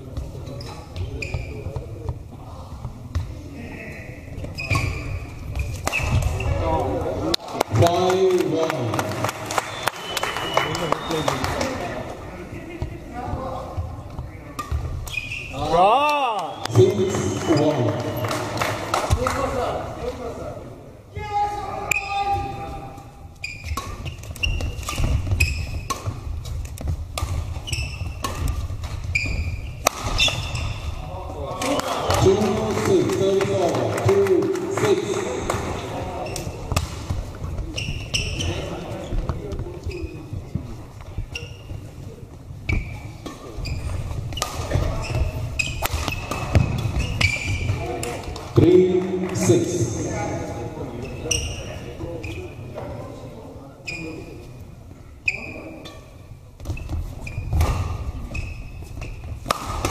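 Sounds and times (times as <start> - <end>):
voices of players and onlookers: 0.0 - 23.4, 30.4 - 56.5
racket striking shuttlecock: 23.7 - 29.1, 29.8 - 30.6.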